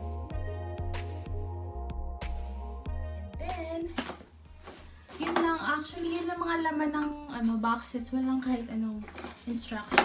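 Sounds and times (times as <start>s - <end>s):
woman speaking: 5.1s - 10.0s
plastic packaging rustling: 8.8s - 10.0s.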